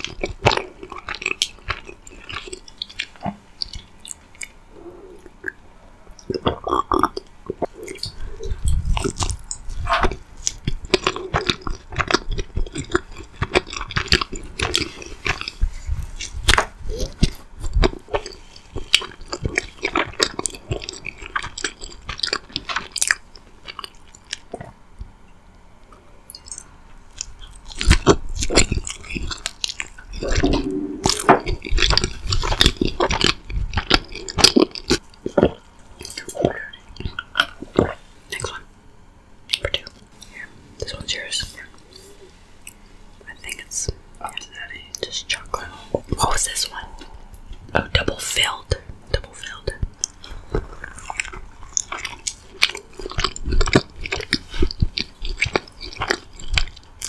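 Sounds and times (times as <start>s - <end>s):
close chewing: 0.0s - 25.1s, 26.3s - 38.8s, 39.5s - 57.0s
wet mouth clicks: 26.3s - 38.6s
person whispering: 39.6s - 42.3s, 43.2s - 47.1s, 47.8s - 49.9s.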